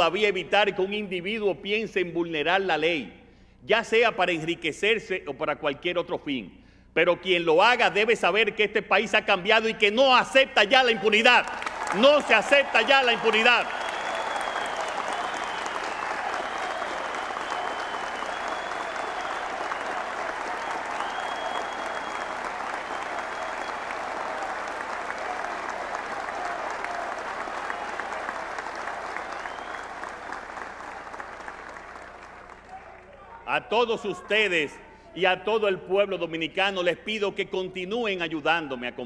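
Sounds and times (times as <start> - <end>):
large audience applauding: 10.8 - 33.4.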